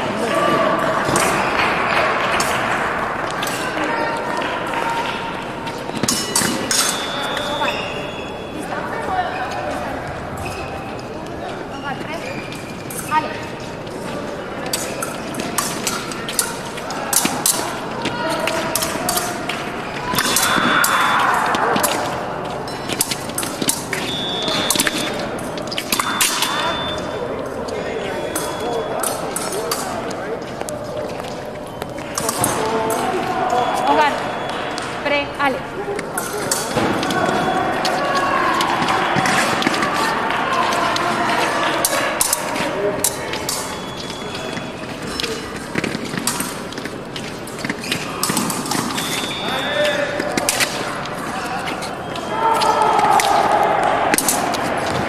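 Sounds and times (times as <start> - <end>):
indistinct voices echoing: 0.0 - 55.0
shoes squeaking on metal floor: 5.6 - 55.0.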